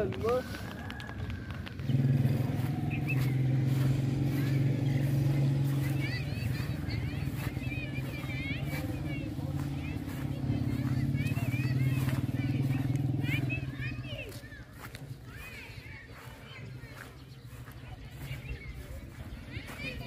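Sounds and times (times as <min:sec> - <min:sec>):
birds chirping: 0:00.0 - 0:20.0
engine droning: 0:00.0 - 0:20.0.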